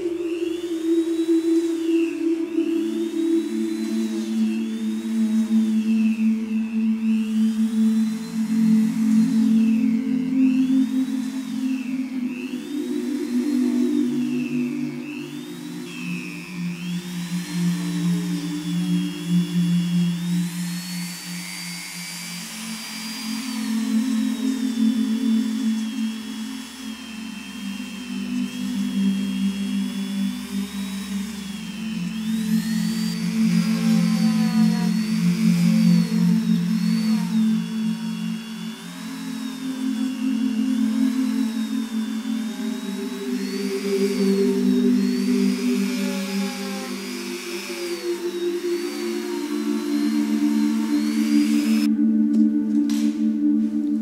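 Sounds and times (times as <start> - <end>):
rotary tool whining: 0.0 - 54.0
background music: 39.7 - 54.0.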